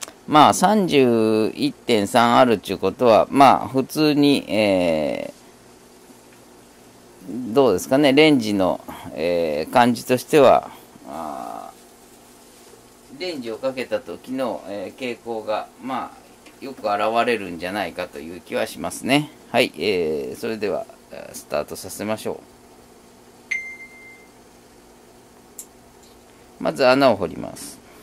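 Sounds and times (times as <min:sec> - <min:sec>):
man hesitating: 0:11.0 - 0:11.8
electronic beep: 0:23.5 - 0:24.3.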